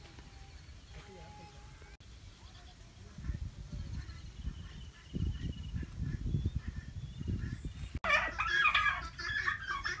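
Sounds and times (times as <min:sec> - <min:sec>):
wind rumbling on microphone: 0:00.0 - 0:10.0
turkeys gobbling: 0:08.0 - 0:10.0.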